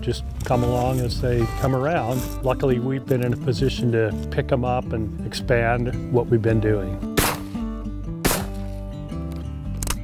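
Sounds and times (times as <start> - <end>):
shotgun shots: 7.2 - 7.6, 8.2 - 8.8.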